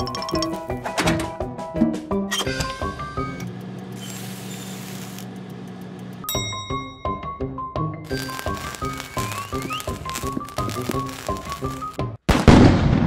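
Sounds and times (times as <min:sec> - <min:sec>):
bright ringing ding: 0:06.2 - 0:07.2
light background music: 0:06.3 - 0:12.0.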